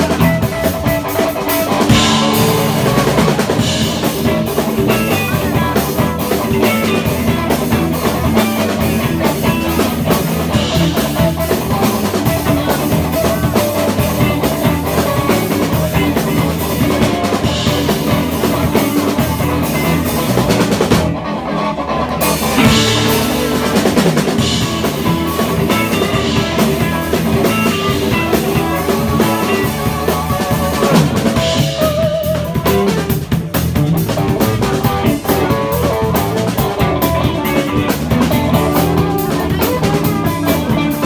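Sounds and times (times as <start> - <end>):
drum kit with cymbals: 0.0 - 21.4, 22.0 - 41.0
blues guitar lines: 0.0 - 41.0.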